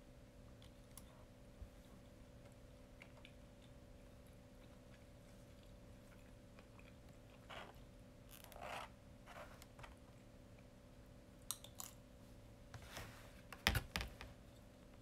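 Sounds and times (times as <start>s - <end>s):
soft handling rustles: 12.7s - 13.6s.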